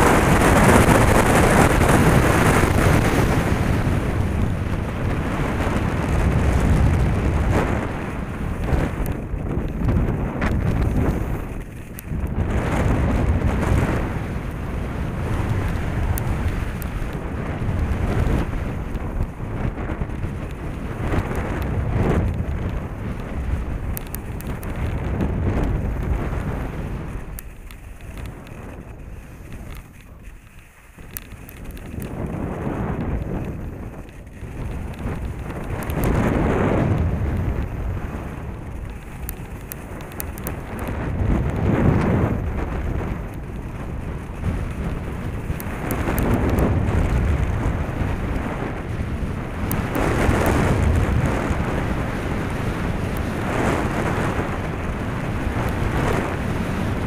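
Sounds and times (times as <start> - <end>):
skis scraping over snow: 0.0 - 57.0
wind rushing over microphone: 0.0 - 57.0.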